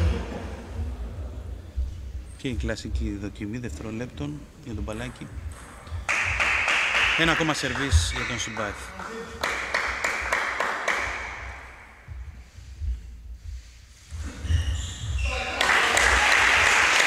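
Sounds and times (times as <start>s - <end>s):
crowd applauding: 6.1s - 11.8s, 15.4s - 17.0s.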